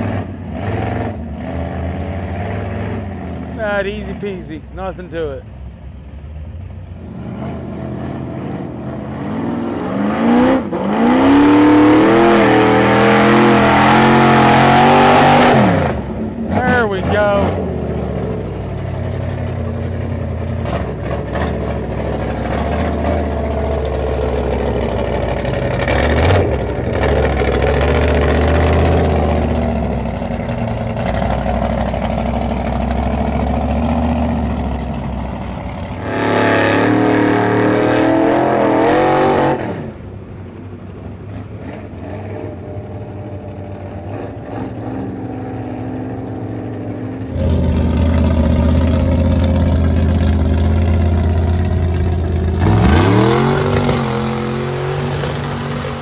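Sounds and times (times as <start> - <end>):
truck engines revving: 0.0 - 56.0.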